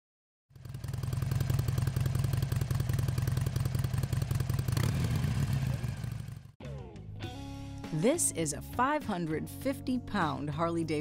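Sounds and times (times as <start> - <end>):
motorcycle engine idling: 0.5 - 6.6.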